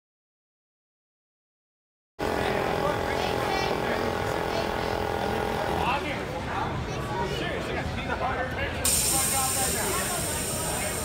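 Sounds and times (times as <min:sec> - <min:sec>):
steady mechanical drone: 0:02.2 - 0:11.0.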